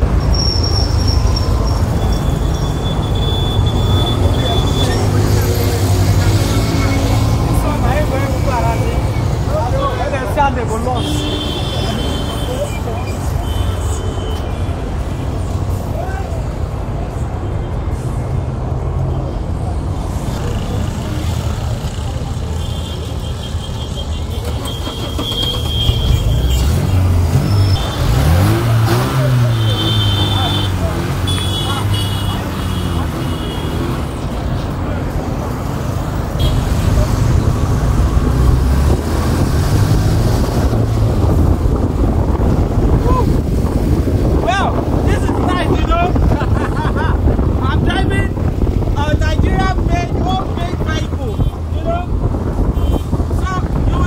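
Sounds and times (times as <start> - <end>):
vehicle engine humming: 0.0 - 53.4
street traffic: 0.0 - 54.0
engine revving: 24.5 - 33.2, 36.5 - 43.4.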